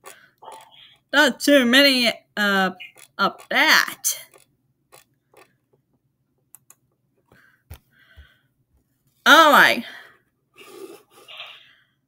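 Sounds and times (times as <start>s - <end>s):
person breathing: 7.3s - 8.7s, 9.8s - 12.0s.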